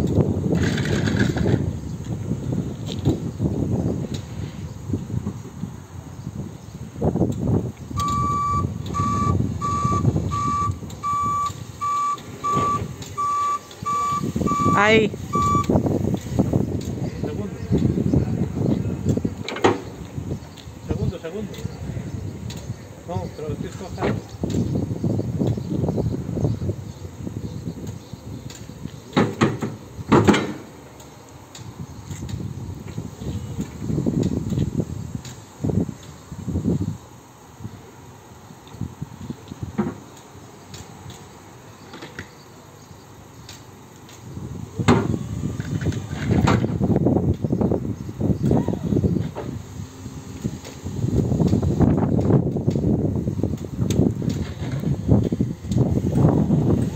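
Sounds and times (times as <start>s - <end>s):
electric forklift drive and hydraulics: 7.1s - 17.1s, 23.7s - 56.9s.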